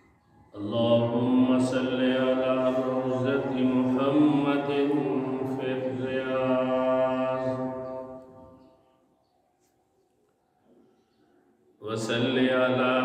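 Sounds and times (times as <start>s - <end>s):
man chanting into microphone: 0.6s - 8.5s, 11.8s - 13.0s.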